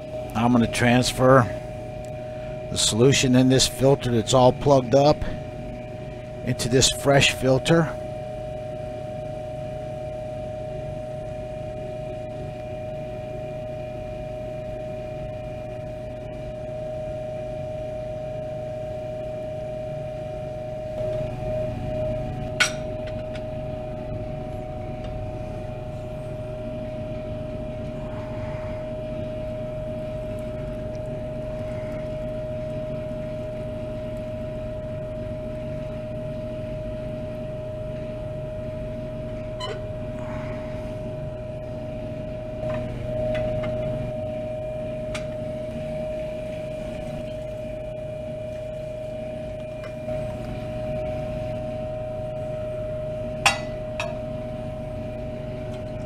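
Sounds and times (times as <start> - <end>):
electric motor hum with whine: 0.0 - 56.0.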